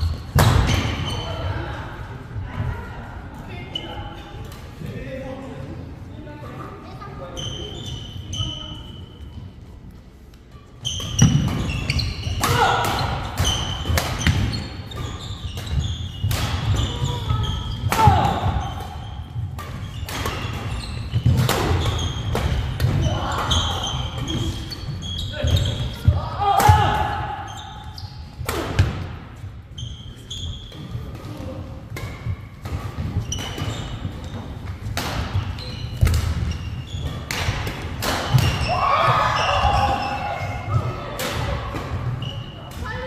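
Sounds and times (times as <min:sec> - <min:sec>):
shoes squeaking: 0:07.1 - 0:09.8, 0:10.4 - 0:26.4, 0:27.0 - 0:28.4, 0:29.4 - 0:43.0.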